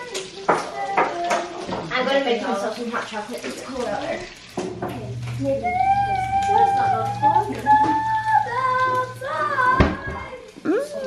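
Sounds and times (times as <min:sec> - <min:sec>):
child singing: 0:00.0 - 0:01.7, 0:05.4 - 0:11.0
low steady hum: 0:04.5 - 0:10.5.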